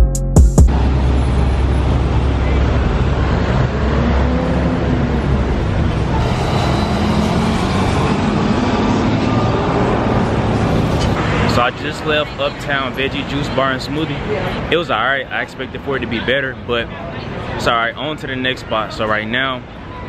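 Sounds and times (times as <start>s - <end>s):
diesel truck engine passing: 0.7s - 18.0s
road traffic noise: 0.7s - 20.0s
passersby voices: 1.3s - 20.0s.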